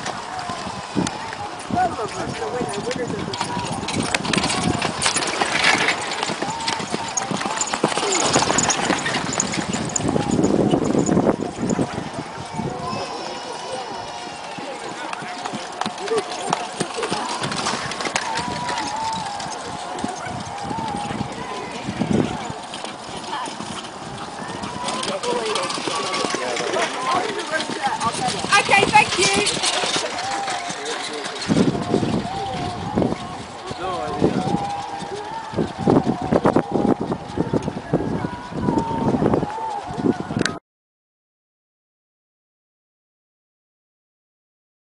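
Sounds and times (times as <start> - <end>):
hoofbeats trotting on sand: 0.0 - 40.4
people talking: 0.0 - 40.6.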